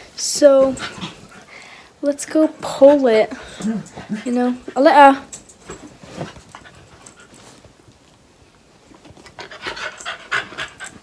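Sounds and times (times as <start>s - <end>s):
dog panting: 9.3s - 11.0s.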